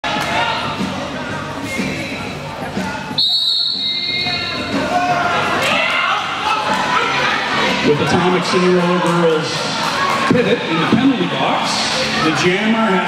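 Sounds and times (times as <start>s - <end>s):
chatter: 0.0s - 13.0s
high whistle blast: 3.2s - 4.7s.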